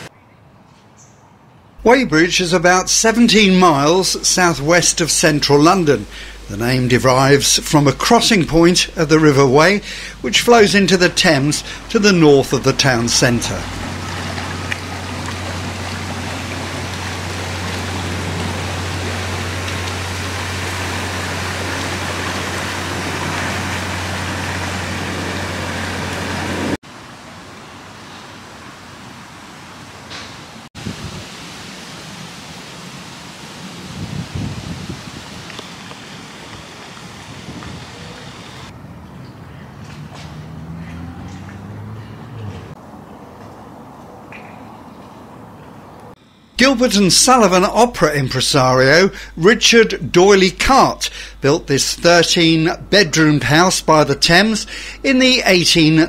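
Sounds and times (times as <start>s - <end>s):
riverside ambience: 0.0s - 30.7s, 31.4s - 56.0s
boat engine humming: 1.8s - 30.6s, 34.9s - 38.7s, 40.3s - 56.0s
wind and water hiss: 1.8s - 38.8s, 46.8s - 56.0s.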